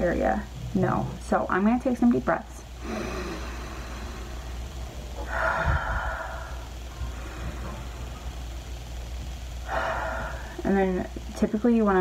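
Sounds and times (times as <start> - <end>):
woman breathing deeply: 2.8 - 8.8, 9.6 - 10.6.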